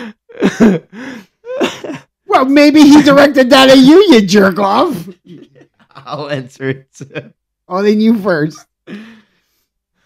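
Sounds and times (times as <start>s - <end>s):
man laughing: 0.0s - 2.0s, 5.0s - 7.4s.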